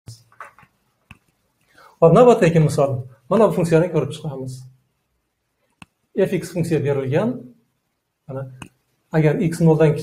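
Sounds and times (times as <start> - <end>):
man speaking: 2.0 - 4.7, 6.1 - 7.6, 8.3 - 10.0.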